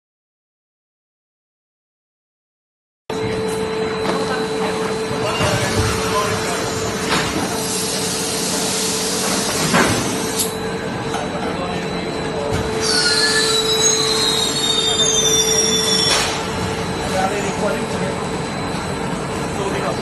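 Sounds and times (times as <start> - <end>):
machine hum with constant tone: 3.1 - 20.0
high squeals gliding downward: 12.8 - 16.4.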